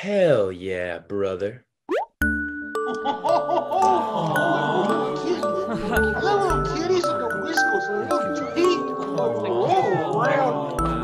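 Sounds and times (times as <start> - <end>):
light tinkling music: 2.2 - 11.0.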